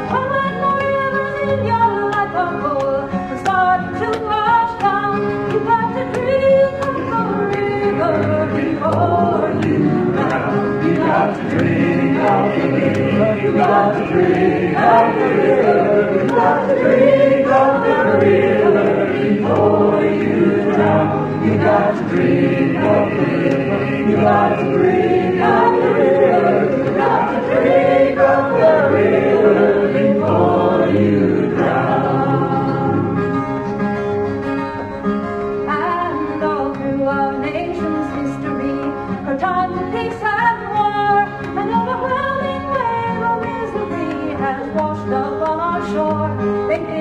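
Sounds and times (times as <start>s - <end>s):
acoustic accompaniment: 0.0s - 47.0s
group singing: 5.5s - 33.8s.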